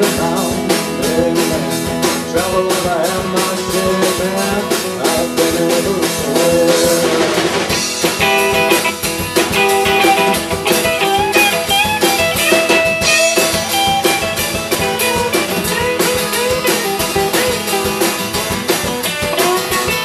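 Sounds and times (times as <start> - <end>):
electric guitar lead with bent notes: 0.0 - 20.0
strummed acoustic guitar: 0.0 - 20.0.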